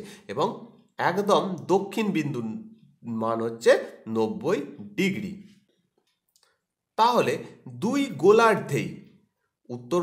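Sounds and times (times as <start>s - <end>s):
man speaking: 0.0s - 5.6s, 7.0s - 10.0s.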